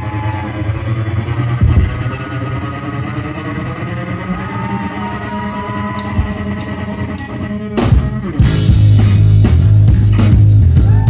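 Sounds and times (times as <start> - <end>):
gliding upward note: 0.8 - 8.2
live pop-rock band playing: 3.0 - 11.0.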